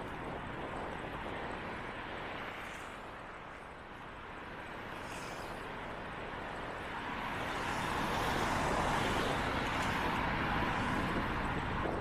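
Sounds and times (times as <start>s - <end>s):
road and wind noise: 0.0s - 12.0s
car passing: 4.5s - 12.0s.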